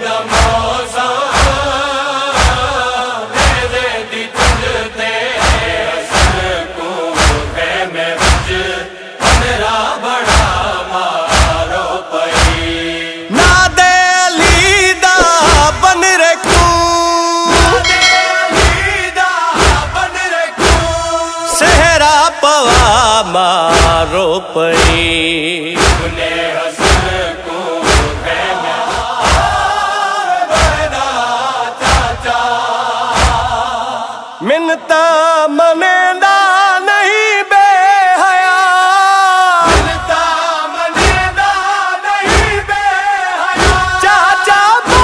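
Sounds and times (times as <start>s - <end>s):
heavy rhythmic thuds: 0.0s - 34.1s, 39.6s - 45.0s
men chanting slow melody: 0.0s - 35.6s, 36.5s - 45.0s.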